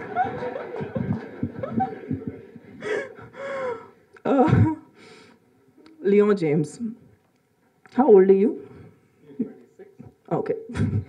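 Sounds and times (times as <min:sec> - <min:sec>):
woman laughing breathily: 0:00.6 - 0:04.8.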